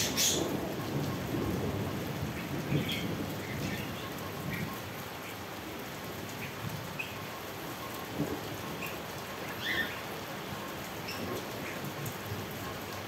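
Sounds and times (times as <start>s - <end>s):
raindrops ticking on surfaces: 0.0s - 13.0s
steady rain falling: 0.0s - 13.0s.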